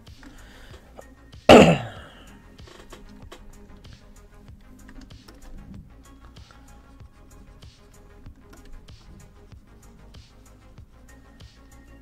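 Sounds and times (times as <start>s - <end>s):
man coughing: 1.5s - 2.3s.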